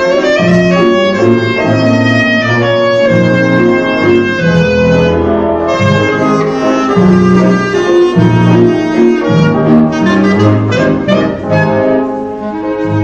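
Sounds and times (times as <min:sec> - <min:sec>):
band accompaniment with bass notes: 0:00.0 - 0:13.0
clarinet solo melody: 0:00.0 - 0:13.0.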